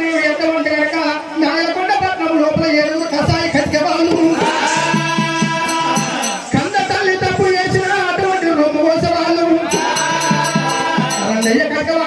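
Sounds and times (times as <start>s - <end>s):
drum beats: 3.2s - 12.0s.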